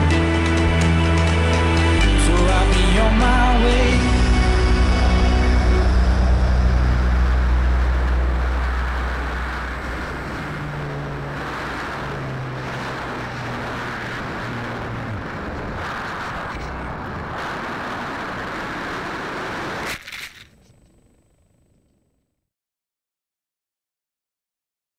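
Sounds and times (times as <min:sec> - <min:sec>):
background music: 0:00.0 - 0:09.6
airflow rushing over camera: 0:04.8 - 0:20.5.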